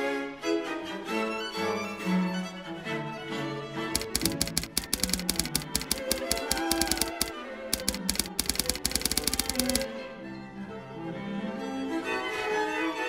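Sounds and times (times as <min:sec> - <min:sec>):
typewriter keystroke clicks: 0:04.0 - 0:09.9.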